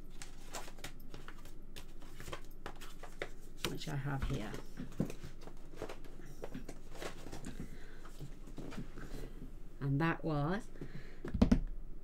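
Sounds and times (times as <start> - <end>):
paper rustling: 0.1 - 9.1.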